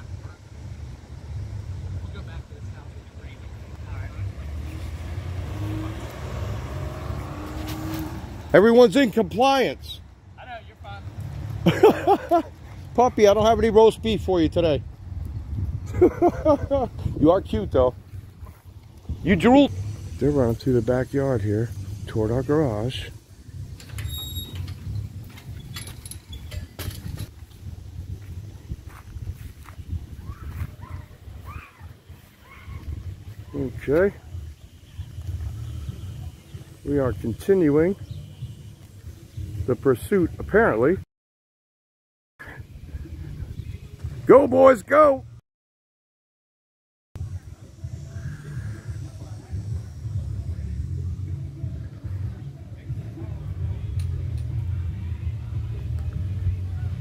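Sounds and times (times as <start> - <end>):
car passing: 0.0 - 14.0, 17.2 - 24.1
wind rumble: 11.0 - 40.4.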